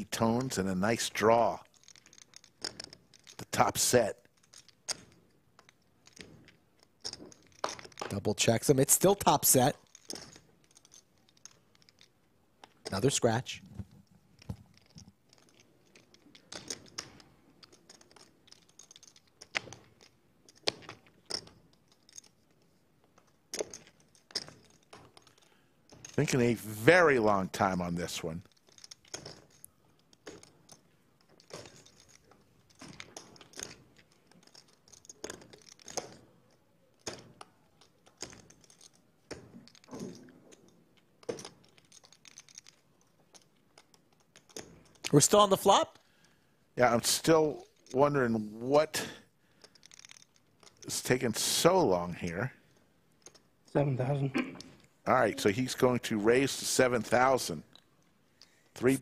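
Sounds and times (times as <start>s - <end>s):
poker chips clicking: 0.1s - 48.2s, 49.0s - 53.7s, 54.6s - 59.0s.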